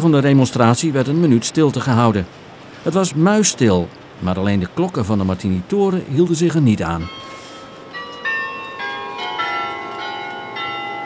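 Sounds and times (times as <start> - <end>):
tower bells ringing: 6.9 - 11.0.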